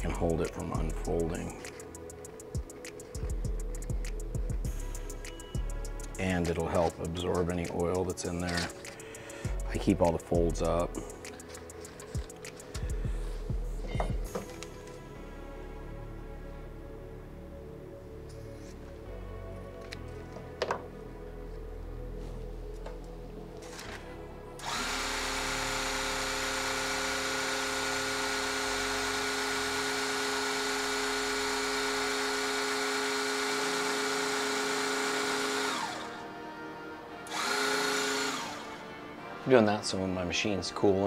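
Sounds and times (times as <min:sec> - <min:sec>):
electric motor running: 0:24.6 - 0:36.3, 0:37.3 - 0:38.8.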